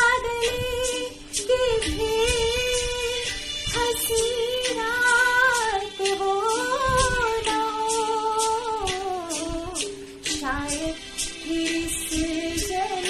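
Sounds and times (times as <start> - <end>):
woman singing: 0.0 - 13.0.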